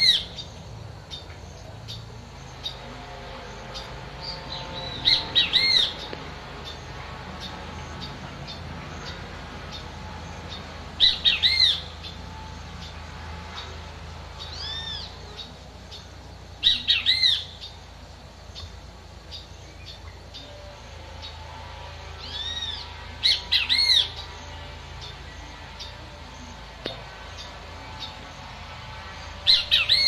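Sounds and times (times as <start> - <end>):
bird calling in arched notes: 0.0 - 28.3, 29.2 - 30.0.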